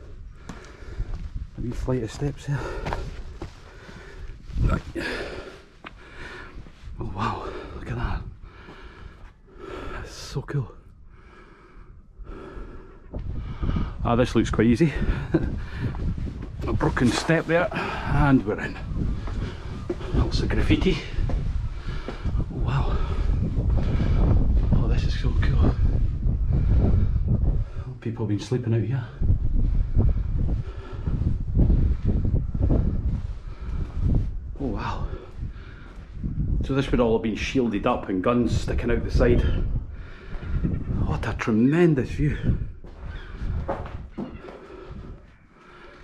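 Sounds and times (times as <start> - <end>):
man breathing: 0.0 - 1.6, 2.5 - 10.2, 10.9 - 14.0, 15.0 - 16.5, 17.7 - 20.3, 21.0 - 24.8, 25.8 - 28.0, 29.2 - 36.5, 39.6 - 40.7, 42.4 - 46.0
wind buffeting microphone: 0.0 - 46.0
low rumble: 10.8 - 28.1, 29.0 - 36.8.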